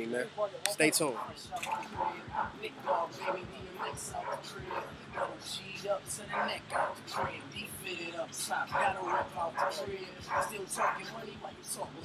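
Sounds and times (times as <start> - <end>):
background voices: 0.0 - 12.0
dogs barking: 1.0 - 5.6, 6.2 - 7.5, 8.6 - 11.2.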